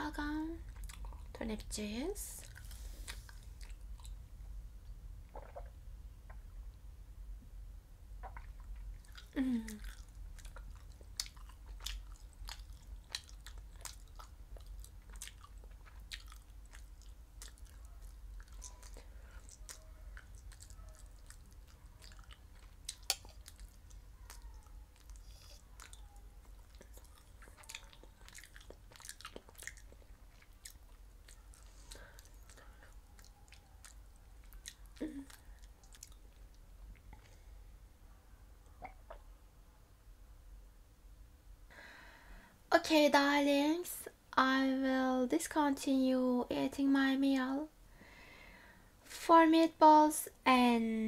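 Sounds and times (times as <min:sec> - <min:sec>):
chewing and lip smacks: 0:00.6 - 0:01.4, 0:02.4 - 0:04.2, 0:05.3 - 0:05.7, 0:08.2 - 0:37.4.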